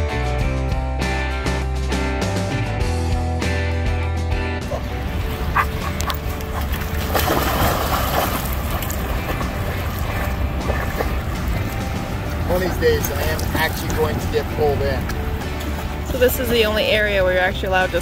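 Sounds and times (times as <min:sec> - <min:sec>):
guitar music: 0:00.0 - 0:18.0
dog splashing in river: 0:04.8 - 0:14.1.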